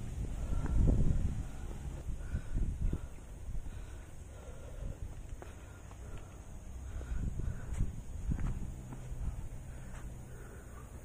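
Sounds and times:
low rumble: 0:00.0 - 0:11.0
footsteps on dirt trail: 0:03.8 - 0:10.6.

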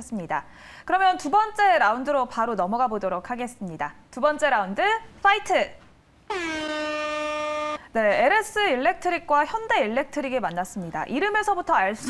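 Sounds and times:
air horn blast: 0:06.3 - 0:07.8.

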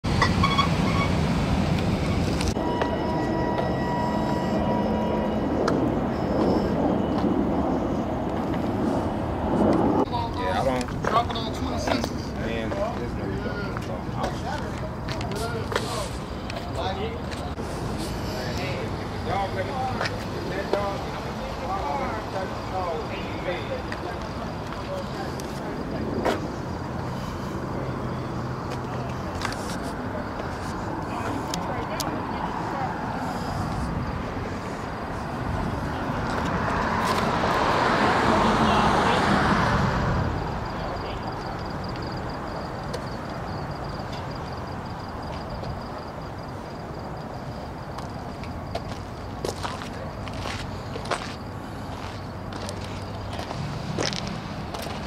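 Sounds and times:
car engines rumbling: 0:00.0 - 0:55.0.

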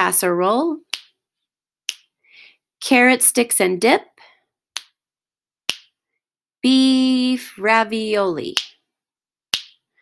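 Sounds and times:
person speaking rhythm patterns: 0:00.0 - 0:01.2, 0:02.8 - 0:05.0, 0:06.6 - 0:08.9
finger snaps: 0:01.9 - 0:02.1, 0:04.8 - 0:05.0.

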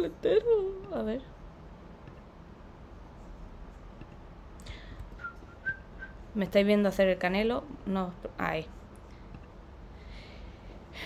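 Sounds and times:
person whistling: 0:05.2 - 0:06.2.

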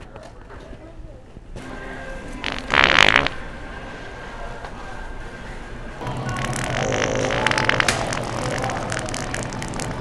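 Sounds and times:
store background noise: 0:00.0 - 0:10.0
electronic fart noise toy: 0:02.4 - 0:03.4, 0:06.3 - 0:10.0.

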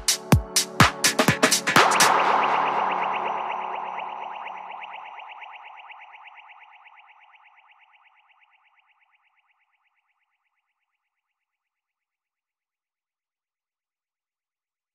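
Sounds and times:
house music bass: 0:00.0 - 0:05.3
pulsing synthesizer tone: 0:00.0 - 0:10.2.

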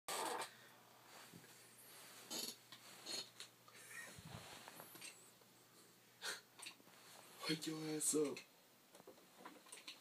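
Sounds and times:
faint room noise: 0:00.1 - 0:10.0
person's stifled laugh: 0:03.7 - 0:04.4.

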